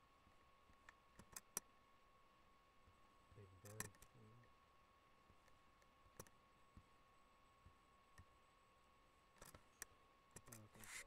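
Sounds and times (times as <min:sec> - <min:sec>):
voiced hum: 0:03.3 - 0:04.6, 0:09.5 - 0:11.0
brief rustle: 0:10.5 - 0:11.0.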